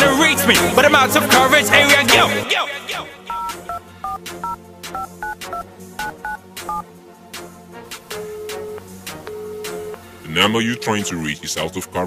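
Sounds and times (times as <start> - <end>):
two-pitch keypad beeps: 3.3 - 6.8, 8.2 - 10.0, 10.7 - 11.2.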